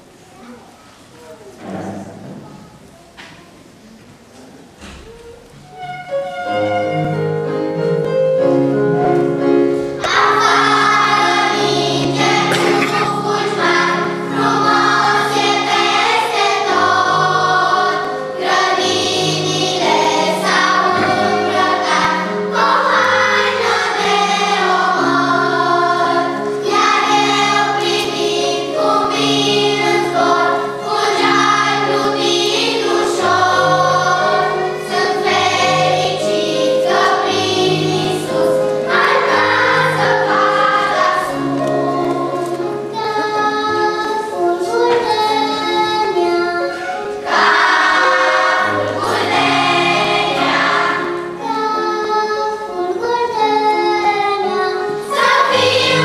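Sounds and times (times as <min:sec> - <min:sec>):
children's choir singing: 0:01.0 - 0:56.0
instrumental accompaniment: 0:04.8 - 0:56.0.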